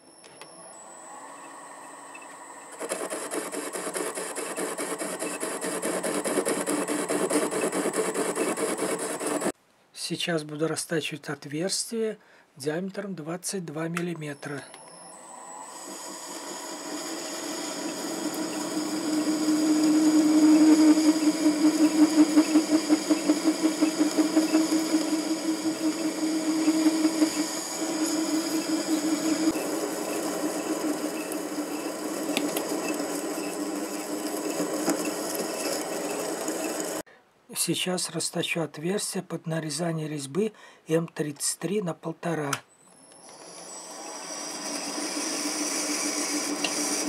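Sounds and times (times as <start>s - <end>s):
lathe motor and gear whine: 0.0s - 9.6s, 14.4s - 37.0s, 43.0s - 47.0s.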